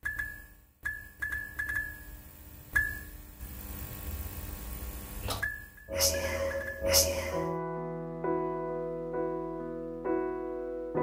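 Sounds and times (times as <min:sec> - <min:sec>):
sharp electrical clicks: 0:00.0 - 0:07.1
low electrical hum: 0:00.1 - 0:08.1.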